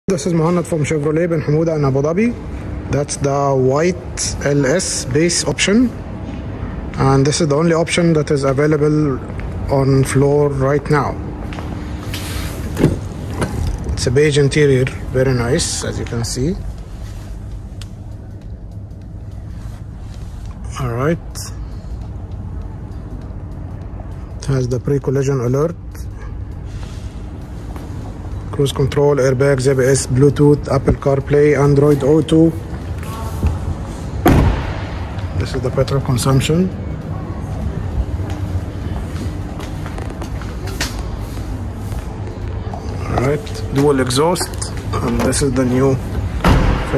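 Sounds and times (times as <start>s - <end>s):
steady low rumble: 0.1s - 46.9s.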